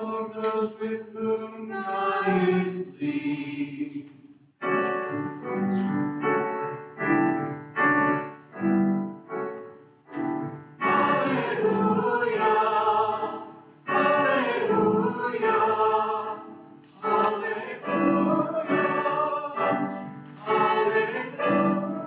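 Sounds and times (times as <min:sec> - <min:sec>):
small vocal group singing: 0:00.0 - 0:04.2, 0:10.8 - 0:22.0.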